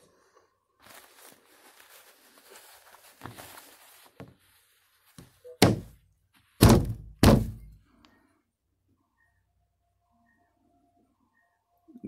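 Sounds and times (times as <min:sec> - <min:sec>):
heavy thunk: 0:05.6 - 0:05.9, 0:06.6 - 0:07.7.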